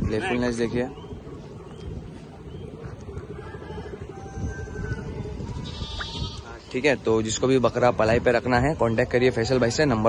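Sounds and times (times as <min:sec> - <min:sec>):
goat bleating: 0:05.6 - 0:06.6.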